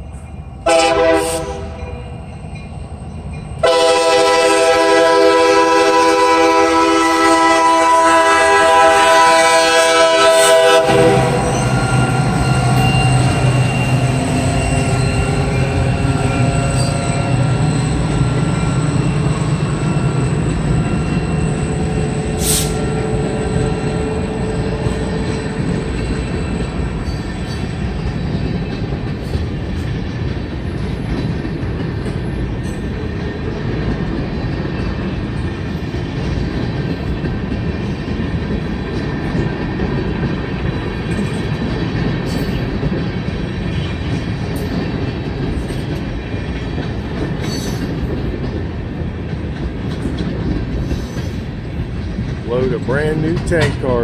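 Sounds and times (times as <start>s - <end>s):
train wheels on rails: 0.0s - 54.0s
locomotive horn: 0.6s - 2.0s, 3.6s - 13.4s, 22.2s - 25.8s.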